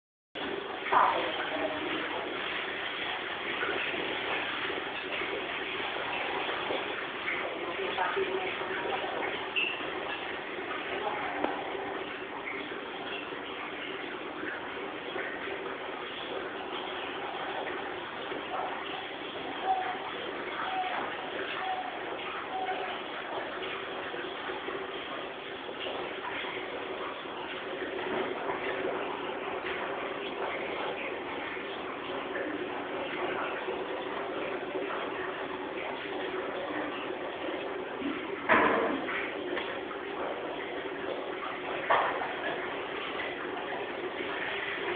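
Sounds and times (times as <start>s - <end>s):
aquarium water and bubbles hissing: 0.4s - 44.9s
steady noisy background: 0.4s - 44.9s
faint indistinct voices: 0.6s - 14.5s, 16.4s - 44.9s.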